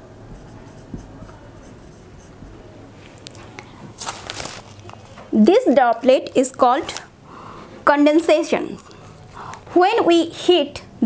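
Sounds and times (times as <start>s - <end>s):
marker scratching on whiteboard: 0.0s - 2.8s
soft knock: 0.3s - 1.4s, 2.4s - 2.7s.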